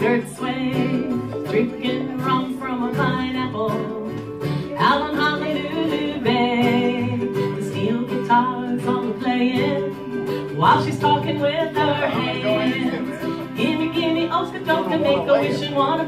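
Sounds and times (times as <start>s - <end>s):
person singing: 0.0s - 16.0s
plucked strings: 0.0s - 16.0s.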